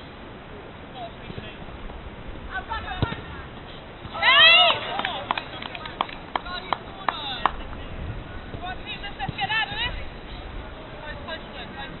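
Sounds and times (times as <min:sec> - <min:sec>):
football being kicked: 0:03.0 - 0:03.3.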